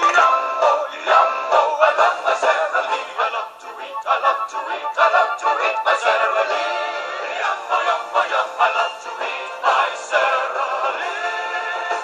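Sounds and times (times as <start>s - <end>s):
voices singing a jingle: 0.0s - 12.0s.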